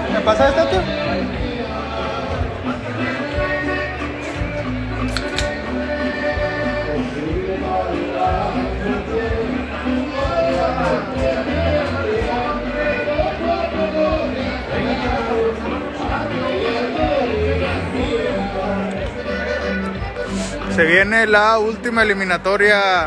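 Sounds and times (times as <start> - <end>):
music with bass line and melody: 0.0 - 23.0.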